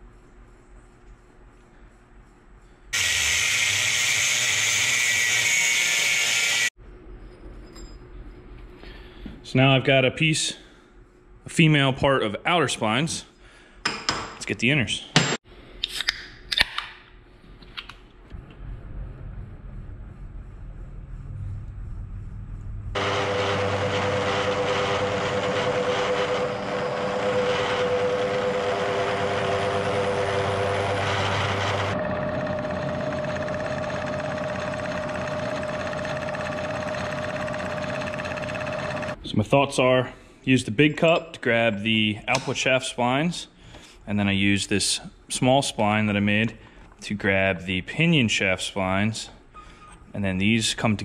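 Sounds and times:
milling machine cutting with whine: 3.0s - 6.7s, 23.0s - 39.2s
low motor hum: 18.3s - 39.2s.

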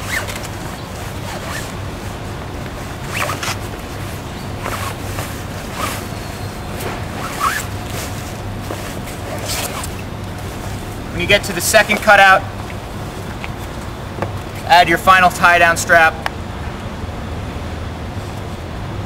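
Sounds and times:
fabric rustling: 0.0s - 14.6s
steady low hum: 0.0s - 19.0s.

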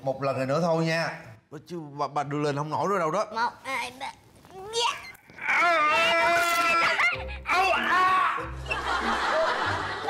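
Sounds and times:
high-pitched cry: 4.8s - 8.4s
background music: 5.4s - 10.0s
laughter: 8.6s - 10.0s.

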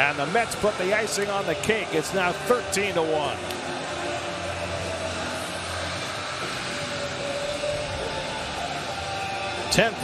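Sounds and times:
crowd-like hiss: 0.0s - 10.0s
faint music from stadium speakers: 0.0s - 10.0s.

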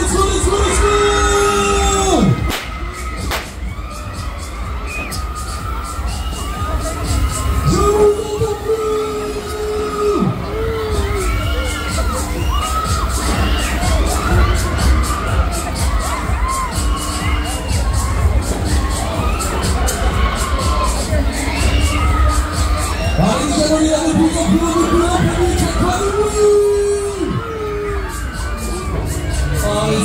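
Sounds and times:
loud fairground music: 0.0s - 30.0s.

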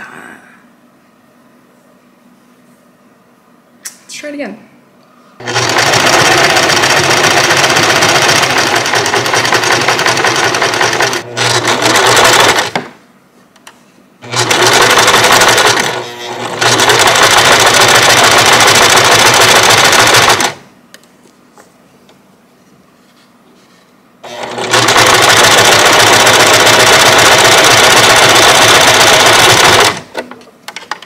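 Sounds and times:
sewing machine stitching: 5.4s - 12.9s, 14.2s - 20.6s, 24.2s - 30.3s.

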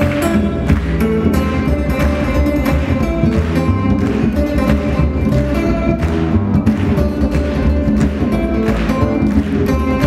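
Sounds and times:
acoustic guitar strummed and picked: 0.0s - 10.0s.

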